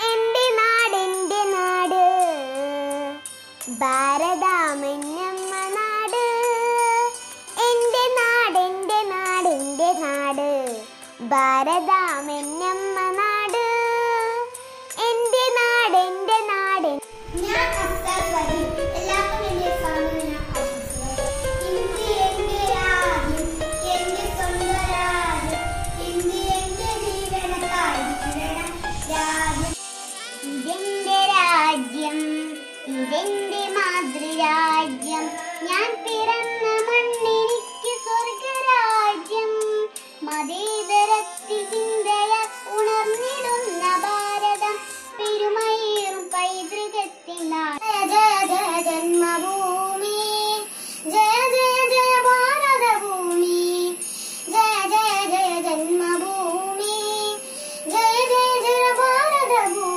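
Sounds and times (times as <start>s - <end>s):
girl singing: 0.0s - 59.9s.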